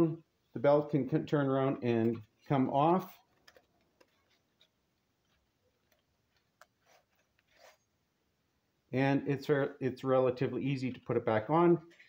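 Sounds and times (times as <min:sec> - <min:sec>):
handling clicks and rustles: 0:01.9 - 0:07.7.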